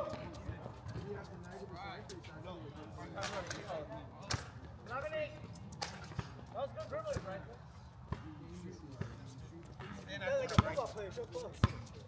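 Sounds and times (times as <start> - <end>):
players' voices: 6.4 - 12.0
basketball bouncing on hard court: 9.8 - 10.8.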